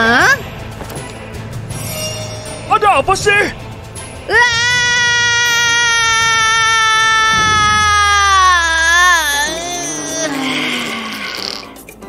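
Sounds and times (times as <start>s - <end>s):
woman screaming: 4.3s - 11.6s.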